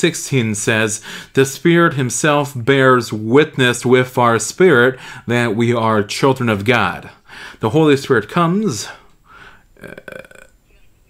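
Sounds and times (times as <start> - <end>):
man saying uh: 0.0 - 9.0, 9.8 - 10.4
man speaking: 0.0 - 9.1, 9.8 - 10.4.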